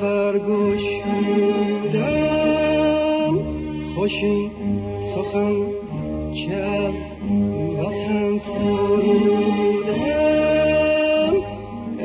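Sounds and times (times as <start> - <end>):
classical ensemble melody: 0.0 - 12.0.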